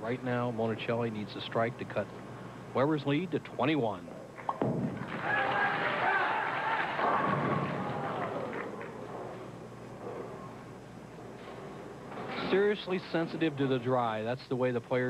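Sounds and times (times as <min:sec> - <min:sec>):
bowling ball thud on lane: 0:04.4 - 0:05.3
bowling ball rolling: 0:04.4 - 0:13.5
pins crashing: 0:06.8 - 0:09.0.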